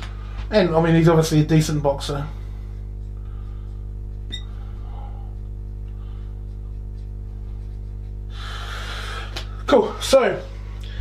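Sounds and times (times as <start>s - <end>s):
electrical hum: 0.0s - 11.0s
marker squeaking on glass: 4.3s - 4.6s.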